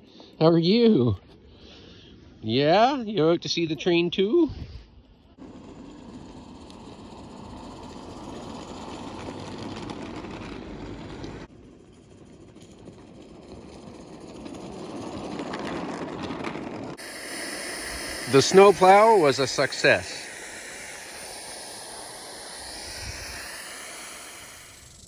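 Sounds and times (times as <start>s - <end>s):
steam locomotive hissing: 5.4s - 10.5s, 17.0s - 25.0s.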